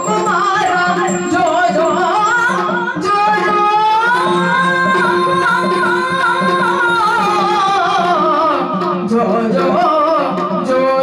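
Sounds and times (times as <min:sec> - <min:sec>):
woman singing ornamented melody: 0:00.0 - 0:08.1.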